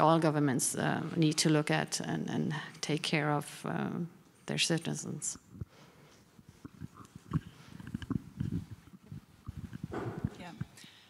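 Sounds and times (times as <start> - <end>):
microphone handling bumps: 6.6 - 10.8.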